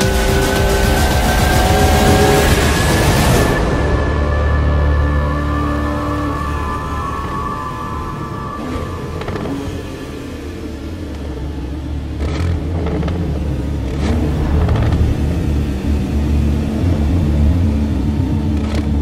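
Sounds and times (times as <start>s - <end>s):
dramatic film score: 0.0s - 19.0s
sports car engine rumble: 0.0s - 19.0s.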